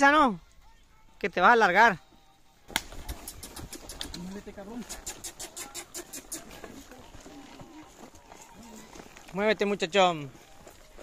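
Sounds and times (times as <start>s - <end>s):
faint men's voices: 0.0s - 11.0s
horses stepping through mud: 2.7s - 11.0s.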